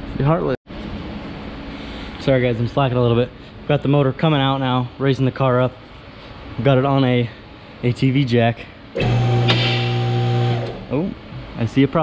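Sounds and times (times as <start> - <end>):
hydraulic pump motor humming: 9.0 - 10.9.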